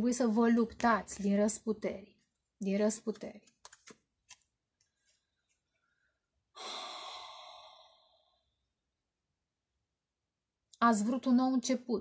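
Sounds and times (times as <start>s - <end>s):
woman sighing: 6.6s - 8.4s.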